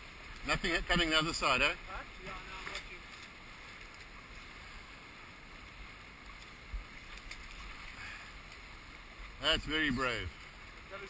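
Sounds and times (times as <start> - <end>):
water noise: 0.0 - 11.0
wind: 0.0 - 11.0.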